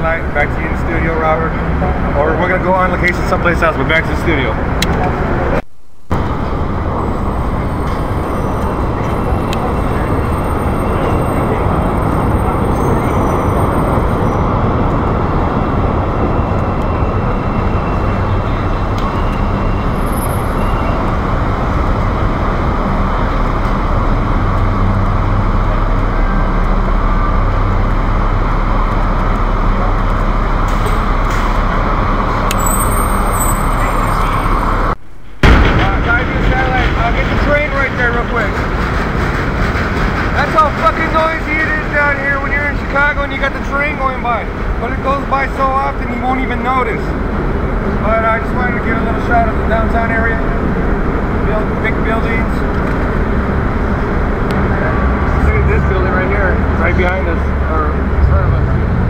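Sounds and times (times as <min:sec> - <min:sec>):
voices: 0:00.0 - 0:21.9, 0:24.6 - 0:59.0
elevated trains rumbling: 0:00.0 - 0:59.0
street traffic rumbling: 0:00.0 - 0:59.0.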